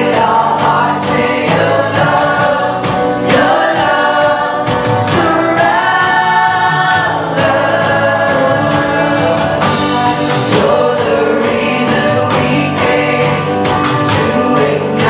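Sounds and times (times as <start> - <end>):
band with steady beat: 0.0 - 15.0
strummed acoustic guitar: 0.0 - 15.0
women singing into microphones: 0.0 - 15.0.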